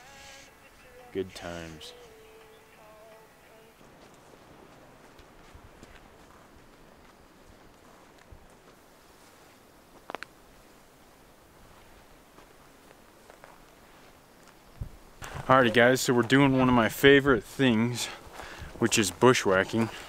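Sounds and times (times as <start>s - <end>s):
footsteps on dirt and grass: 3.8s - 10.3s, 11.6s - 16.9s, 17.5s - 20.0s.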